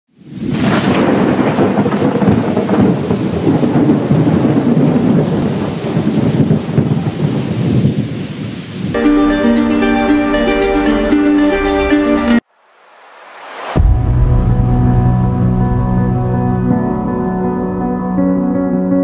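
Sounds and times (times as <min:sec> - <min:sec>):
plucked-string music: 0:09.0 - 0:12.4
loud rumbling rushing noise: 0:12.5 - 0:17.1.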